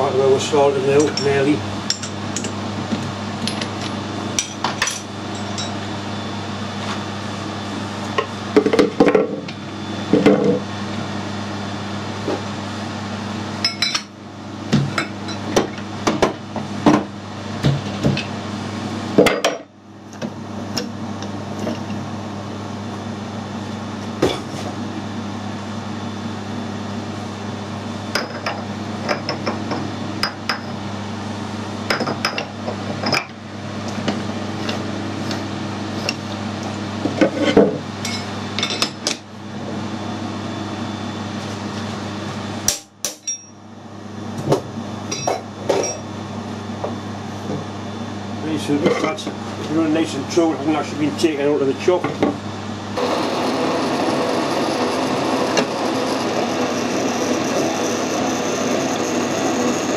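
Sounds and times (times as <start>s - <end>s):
low machine hum: 0.0s - 59.9s.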